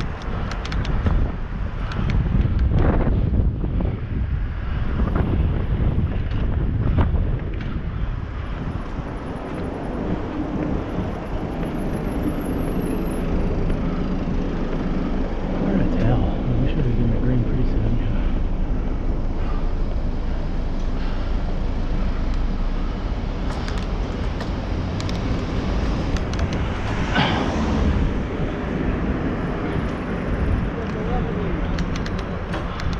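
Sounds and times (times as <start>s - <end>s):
road traffic noise: 0.0s - 32.9s
wind rumble on microphone: 0.0s - 32.9s.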